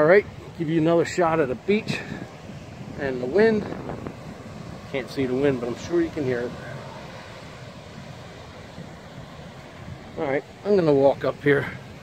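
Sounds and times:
wind blowing across microphone: 0.0 - 12.0.

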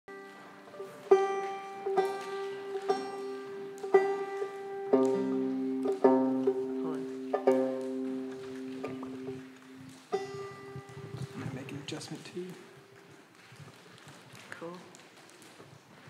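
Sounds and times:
banjo chords ringing: 0.1 - 11.0.

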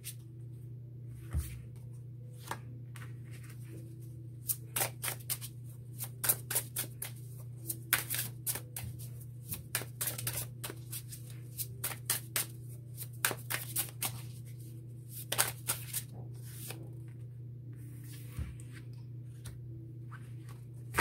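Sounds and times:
low hum: 0.0 - 4.7, 16.0 - 21.0
cards being shuffled: 4.4 - 14.4, 15.1 - 16.8, 20.4 - 21.0.

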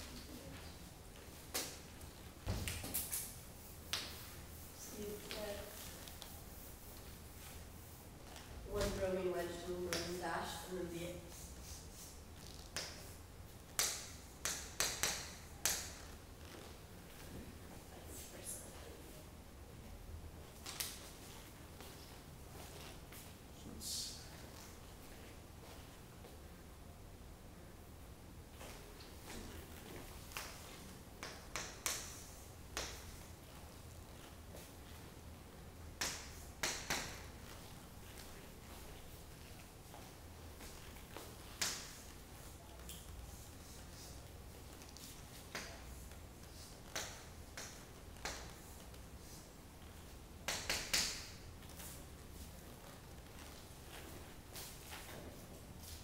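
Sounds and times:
low room hum: 0.0 - 56.0.

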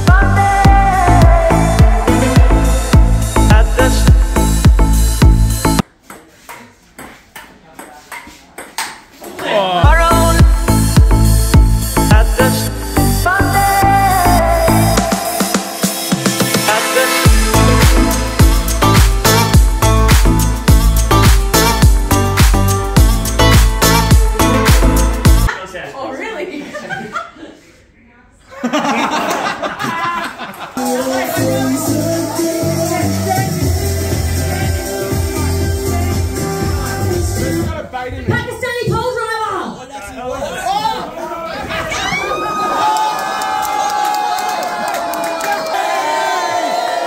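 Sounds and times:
people chuckling: 26.4 - 27.8, 28.5 - 31.8, 40.6 - 42.6.

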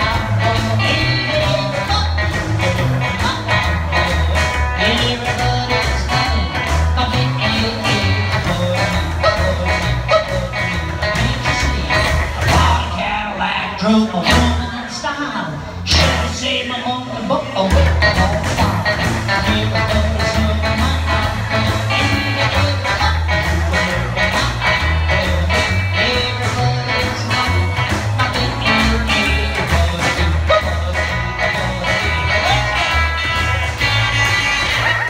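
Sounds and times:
acoustic and electric guitars: 0.0 - 35.0
upright bass: 0.0 - 35.0.

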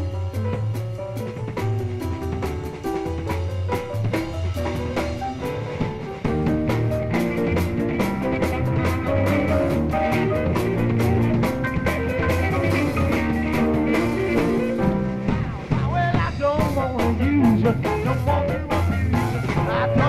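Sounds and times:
rock band playing: 0.0 - 20.0
wavering lead line: 1.4 - 20.0.

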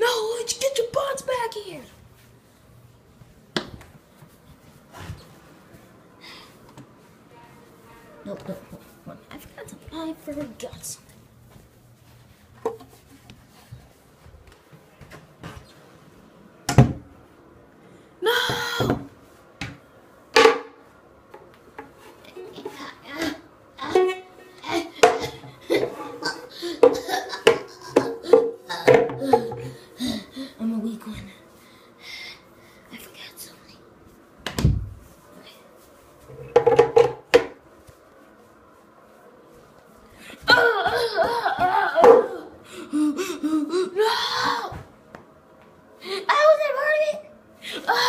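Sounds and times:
child making vocal noises: 18.2 - 19.0, 42.2 - 44.8.

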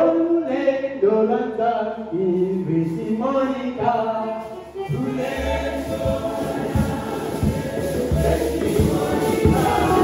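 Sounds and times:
man singing over microphone: 0.0 - 10.0
congregation singing a hymn: 0.5 - 10.0.

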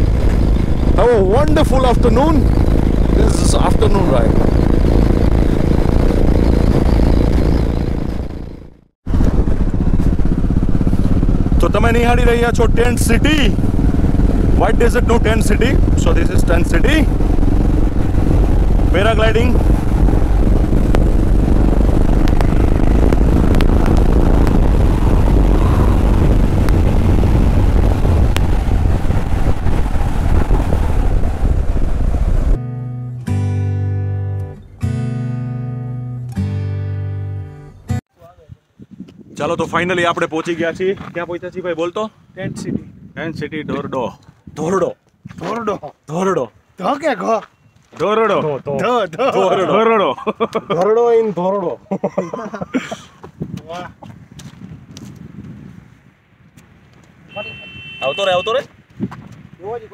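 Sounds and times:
motorcycle engine running: 0.0 - 32.6
wind rumble on microphone: 0.0 - 32.6, 38.2 - 45.7, 52.4 - 59.9
strummed acoustic guitar music: 32.6 - 38.0.

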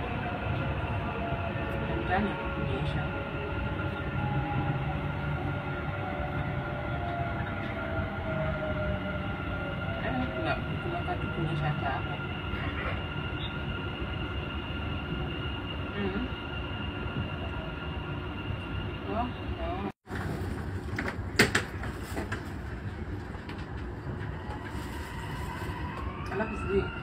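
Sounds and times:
train high whine: 0.0 - 27.0
train rumble: 0.0 - 27.0.

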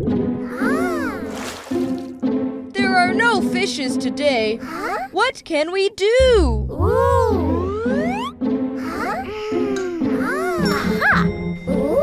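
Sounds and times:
cartoon background music: 0.0 - 12.0
cartoon character voice: 0.5 - 1.2, 4.5 - 5.5, 8.8 - 10.7
splash: 0.8 - 2.2.

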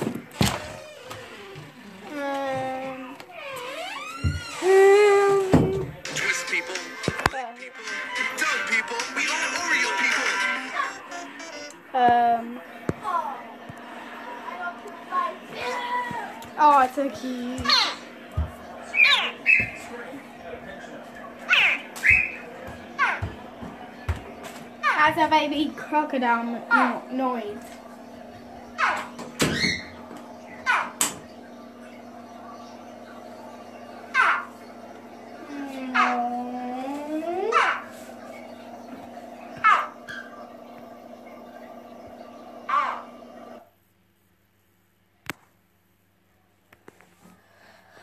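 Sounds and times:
loud steady tone: 10.4 - 12.3
baby crocodile chirping: 18.9 - 19.8, 21.5 - 22.4.

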